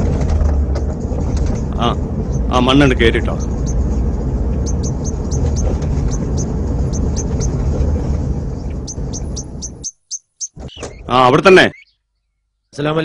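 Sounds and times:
car engine and tyres rumbling: 0.0 - 11.7
bird chirping: 1.4 - 7.9, 8.5 - 12.9.

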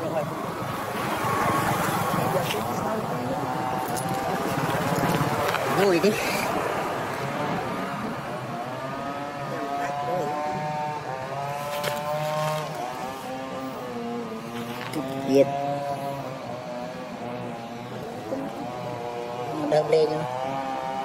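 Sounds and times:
motor engine running: 2.1 - 21.0.

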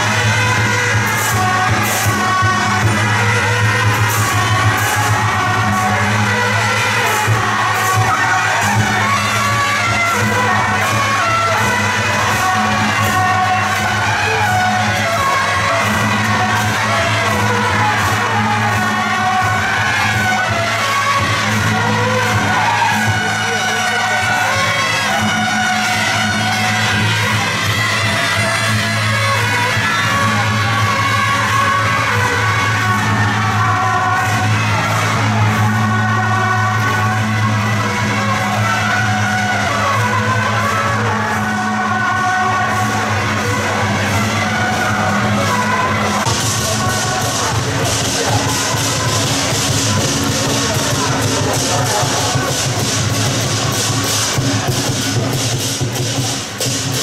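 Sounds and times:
clashing cymbals and drums: 0.0 - 57.0.

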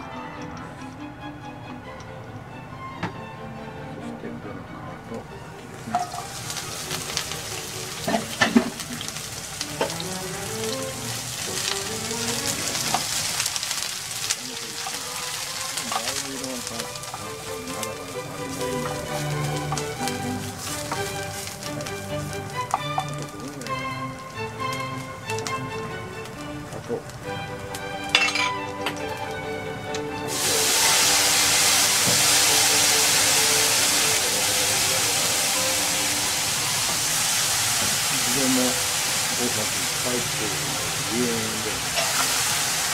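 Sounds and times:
food sizzling in hot oil: 5.4 - 42.9
loud hiss of liquid in pan: 5.8 - 26.4, 30.2 - 42.9
utensil clinking against pan: 5.9 - 6.3, 22.6 - 23.3, 28.1 - 29.0, 41.9 - 42.3.

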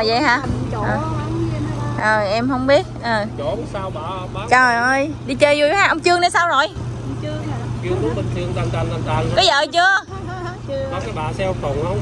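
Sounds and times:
faint voices talking: 0.0 - 12.0
steady low hum: 0.0 - 12.0.

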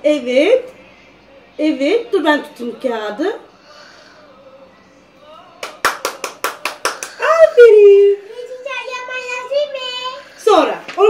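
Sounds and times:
woman clapping: 5.6 - 7.2.

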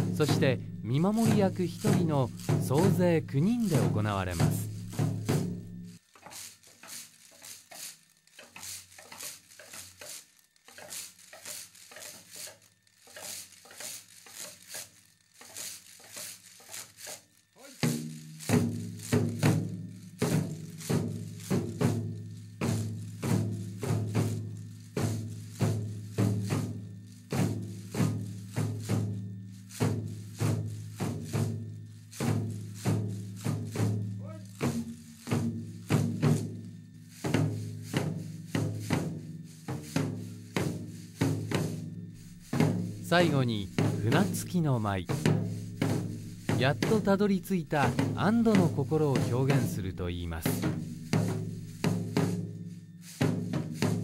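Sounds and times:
wooden clappers clacking: 0.0 - 5.4, 6.0 - 21.9
drum strokes: 0.0 - 54.0.

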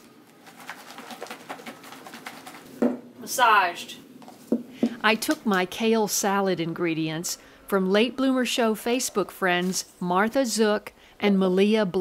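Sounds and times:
leaves rattling in plastic container: 0.3 - 2.8.

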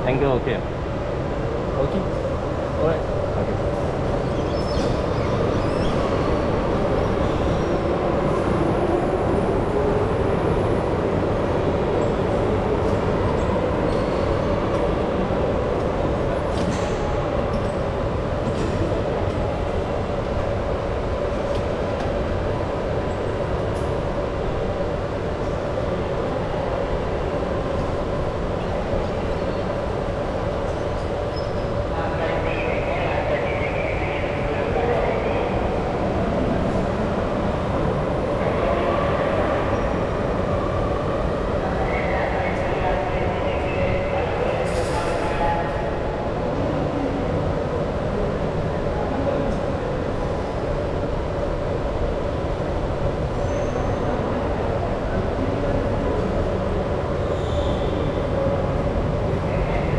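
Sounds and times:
faint voices: 31.2 - 51.7.

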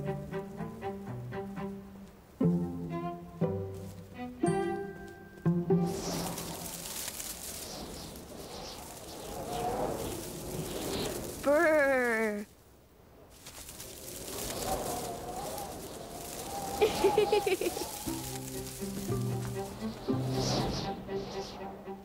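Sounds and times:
plucked and bowed cello music: 0.0 - 6.0, 18.1 - 22.0
whooshing cartoon wind: 5.7 - 12.5, 13.6 - 22.0
wavering falling voice: 15.1 - 18.8.

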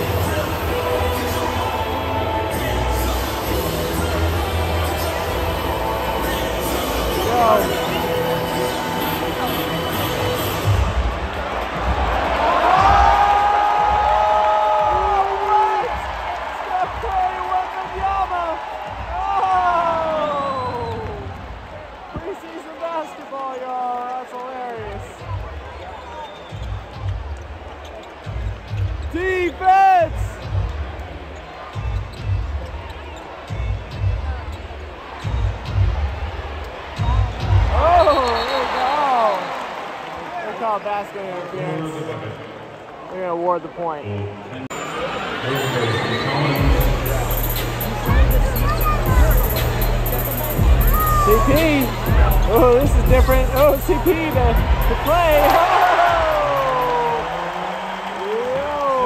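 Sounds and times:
arena music: 0.0 - 14.0, 45.4 - 57.6
crowd noise: 0.0 - 59.0.

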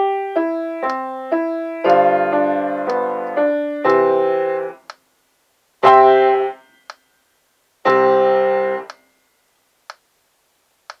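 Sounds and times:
piano chord: 0.0 - 4.8, 5.8 - 6.7
metronome ticking: 2.8 - 3.2.

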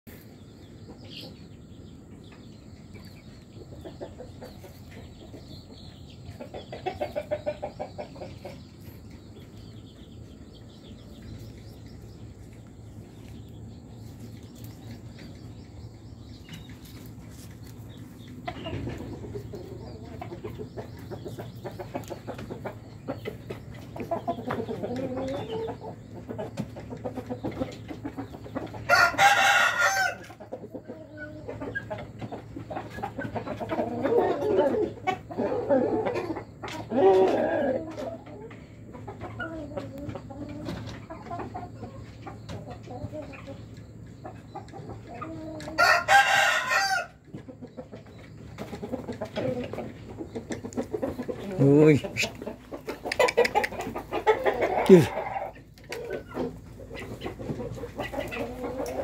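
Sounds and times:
young chickens clucking: 0.1 - 59.0
rooster crowing: 28.9 - 30.2, 45.8 - 47.2.

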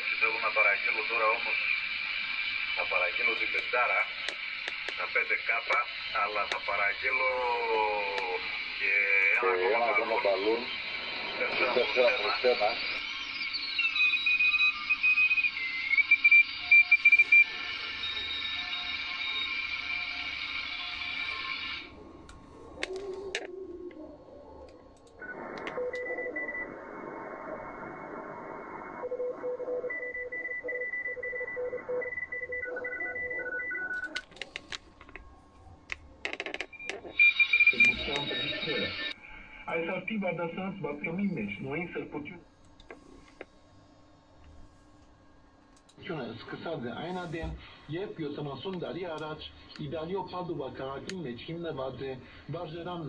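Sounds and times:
radio static: 0.0 - 23.6, 25.1 - 29.9, 36.3 - 43.5, 46.0 - 53.0
faint radio station audio: 0.0 - 53.0
clicks: 24.6 - 26.1.

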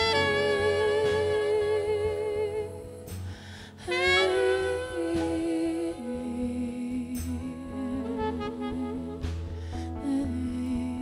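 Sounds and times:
slow jazz melody: 0.0 - 11.0
soft low bass line: 0.0 - 11.0.

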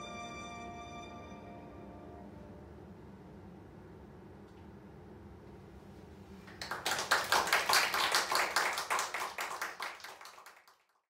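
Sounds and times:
small audience applauding: 6.4 - 11.0.

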